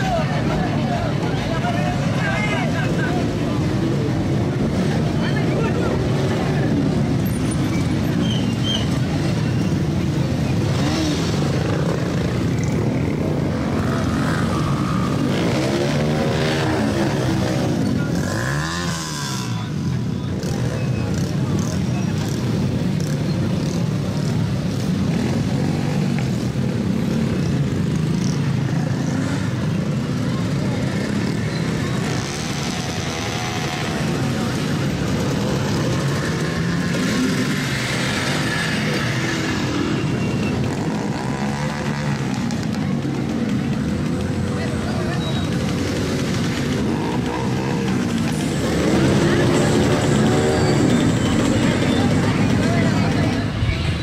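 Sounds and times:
voices: 0:00.0 - 0:54.0
small motorcycle engines idling: 0:00.4 - 0:54.0.

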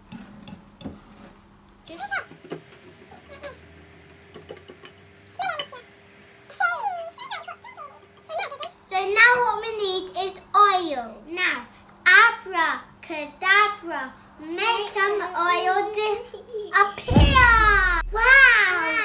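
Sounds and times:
whisks clicking against glass bowls: 0:01.9 - 0:05.8.

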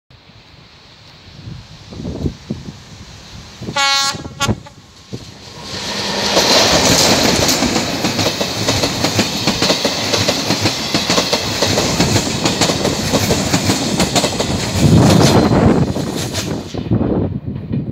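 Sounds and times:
passenger train passing: 0:00.1 - 0:17.9.

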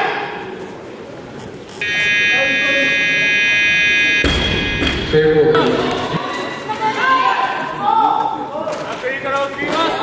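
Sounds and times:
high-pitched electronic buzzer: 0:01.8 - 0:05.5.

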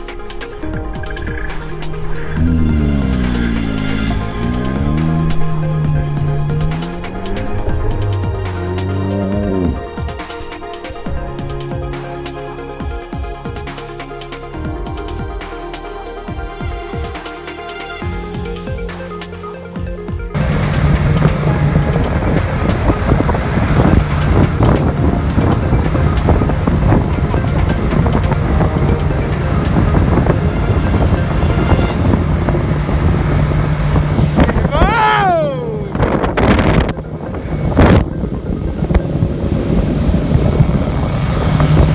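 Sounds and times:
water rushing past hull: 0:00.0 - 0:12.0, 0:20.3 - 0:41.9
outboard motor running: 0:00.6 - 0:10.5, 0:19.8 - 0:41.9
wind buffeting microphone: 0:20.4 - 0:41.9
falling wavering cry: 0:34.7 - 0:36.0.

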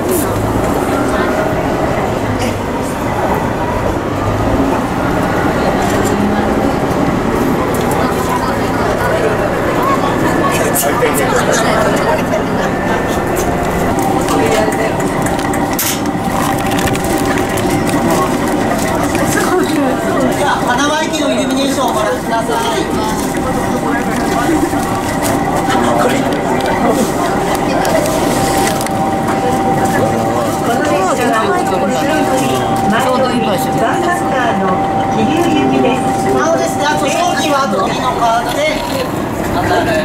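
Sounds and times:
passengers chattering: 0:00.0 - 0:40.0
railcar running noise: 0:00.0 - 0:40.0
steady high tone: 0:00.0 - 0:40.0.

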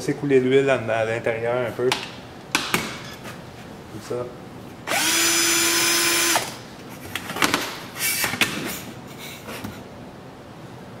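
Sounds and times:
cordless drill running: 0:04.9 - 0:06.6.

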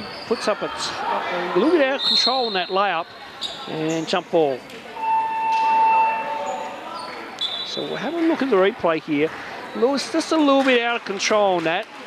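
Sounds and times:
scoreboard buzzer tone: 0:05.0 - 0:06.8.

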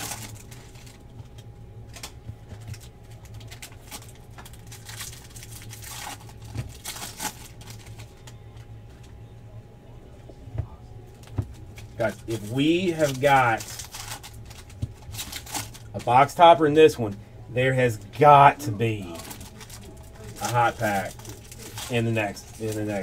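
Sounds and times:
trading cards rustling and clicking: 0:00.0 - 0:09.2, 0:11.2 - 0:17.2, 0:17.9 - 0:23.0
low hum: 0:00.0 - 0:23.0.

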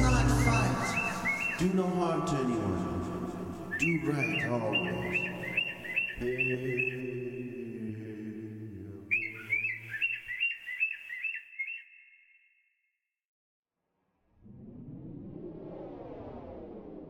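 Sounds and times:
bird chirps: 0:00.0 - 0:01.9, 0:03.2 - 0:07.5, 0:09.1 - 0:12.7
low held music chord: 0:00.0 - 0:04.3.

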